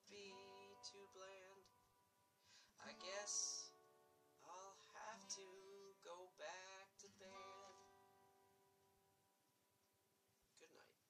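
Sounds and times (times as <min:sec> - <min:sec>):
acoustic guitar strummed: 0:00.0 - 0:01.6, 0:02.8 - 0:09.2.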